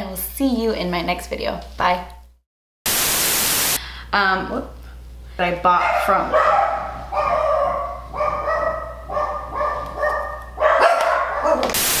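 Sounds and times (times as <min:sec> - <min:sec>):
loud even hiss: 0:02.9 - 0:03.8, 0:11.8 - 0:12.0
dog whining: 0:07.2 - 0:11.8.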